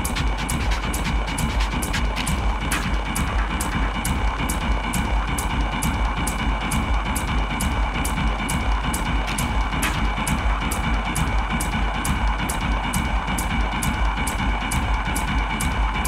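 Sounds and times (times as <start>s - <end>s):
deep techno music: 0.0s - 16.0s.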